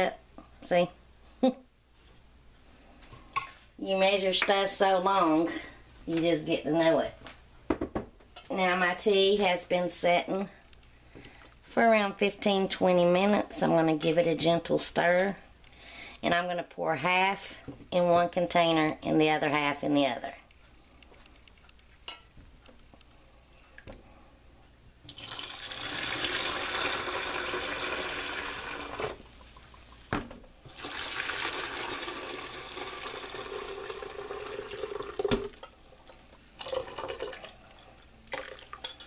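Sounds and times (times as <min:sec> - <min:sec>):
knock: 0:07.7 - 0:08.1
tea pouring into plastic pitcher: 0:25.1 - 0:29.2, 0:30.7 - 0:35.6, 0:36.6 - 0:37.6, 0:38.3 - 0:38.8.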